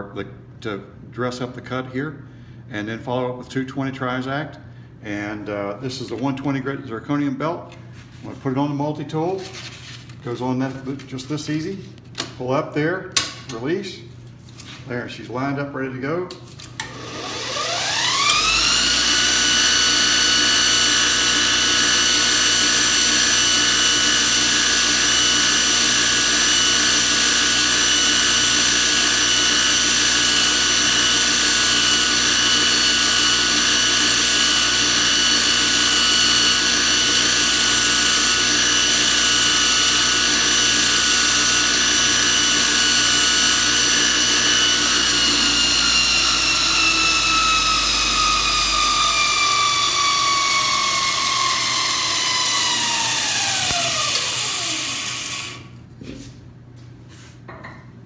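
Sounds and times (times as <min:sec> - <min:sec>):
belt grinder motor whine: 0:16.8 - 0:55.7.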